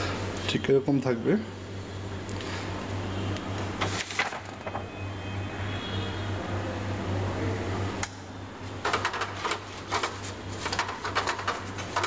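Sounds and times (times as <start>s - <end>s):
low electrical hum: 0.0s - 12.0s
paper sheets rustling: 3.8s - 4.8s, 8.8s - 12.0s.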